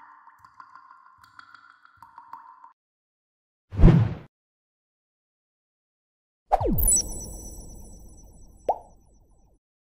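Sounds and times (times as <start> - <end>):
pop with upward pitch sweep: 6.5 - 9.2.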